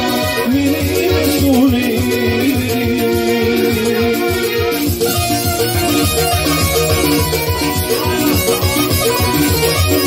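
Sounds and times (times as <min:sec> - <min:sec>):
electronic keyboard folk melody: 0:00.0 - 0:10.0
fast drum beat: 0:00.0 - 0:10.0.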